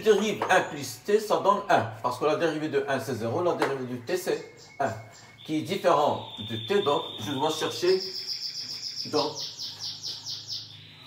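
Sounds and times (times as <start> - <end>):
small bird chirping: 3.8 - 11.0.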